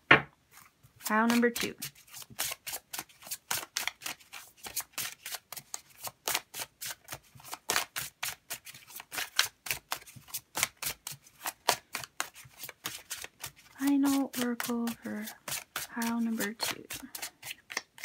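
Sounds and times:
cards shuffling: 0.5 - 18.0.

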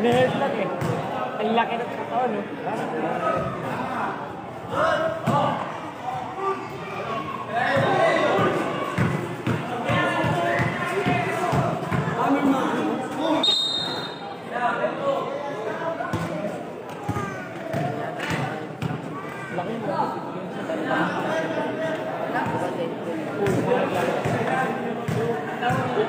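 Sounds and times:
people shouting and chattering: 0.0 - 26.0.

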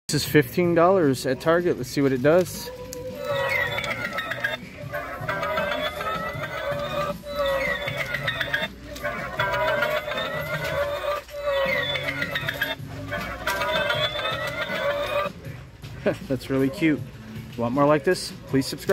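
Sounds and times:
toy playing music: 2.4 - 15.6.

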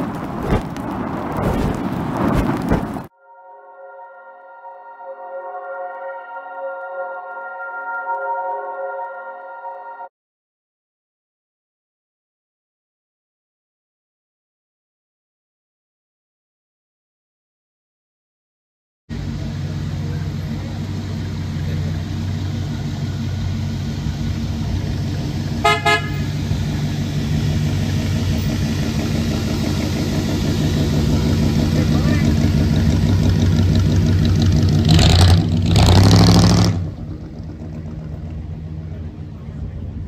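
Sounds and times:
car engine rumbling: 0.0 - 3.1, 19.1 - 40.0
loud engine bursts: 19.1 - 39.0
car horn toot: 25.6 - 26.4.

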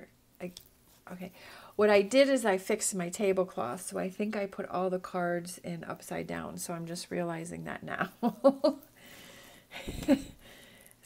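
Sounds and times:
woman laughing breathily: 8.4 - 10.8.

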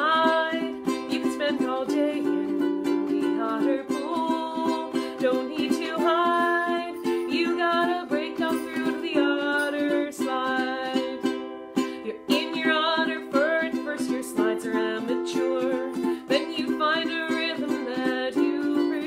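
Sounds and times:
ukulele strumming chords: 0.0 - 19.0
woman singing children's song: 0.0 - 19.0.

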